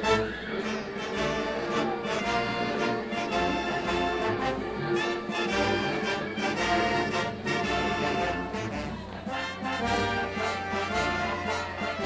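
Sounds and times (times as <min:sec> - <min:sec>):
brass band march music: 0:00.0 - 0:12.0.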